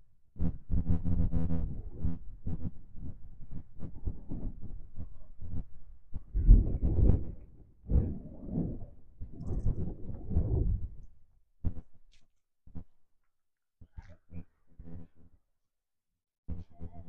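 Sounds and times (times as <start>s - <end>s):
wind buffeting microphone: 6.2s - 11.1s.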